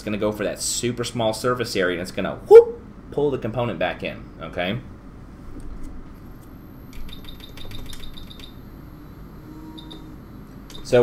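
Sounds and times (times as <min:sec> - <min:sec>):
faint high whine: 0:05.6 - 0:11.0.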